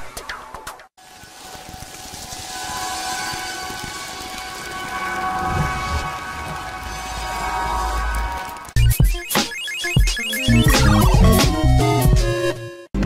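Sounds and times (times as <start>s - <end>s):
rain-like hiss: 1.0s - 8.3s.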